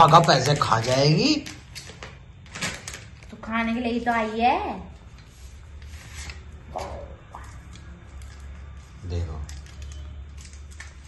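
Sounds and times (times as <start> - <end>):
wrapper and foil rustling: 0.0 - 4.4, 5.2 - 11.0.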